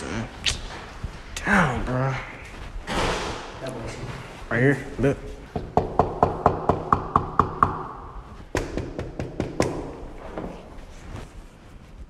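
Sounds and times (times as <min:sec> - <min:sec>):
knuckles knocking on door: 0:05.5 - 0:07.9, 0:08.5 - 0:09.9.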